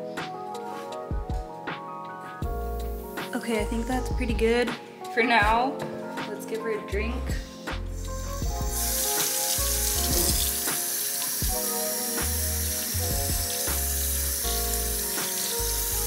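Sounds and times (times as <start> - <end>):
background music with bass: 0.0 - 4.8, 6.9 - 10.8, 11.4 - 16.0
tap water running into sink: 8.4 - 16.0.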